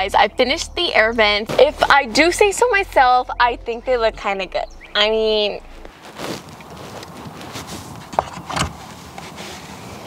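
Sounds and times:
rustles and knocks of handling: 5.8s - 10.0s.

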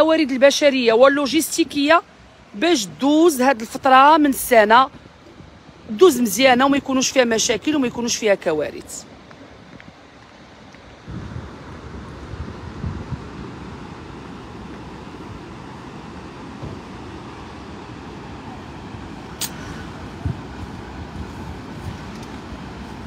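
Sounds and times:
distant surf: 0.0s - 23.0s
wind buffeting microphone: 9.2s - 23.0s.

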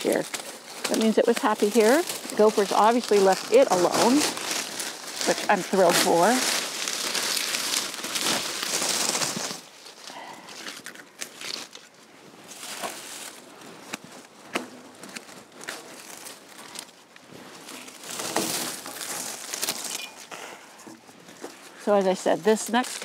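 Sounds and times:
dry leaves rustling and crackling: 0.0s - 23.0s.

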